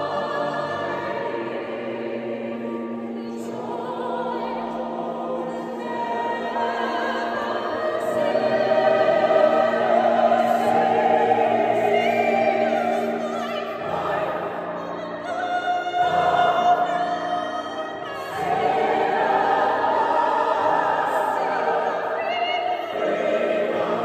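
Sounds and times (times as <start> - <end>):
mixed choir singing: 0.0 - 24.0.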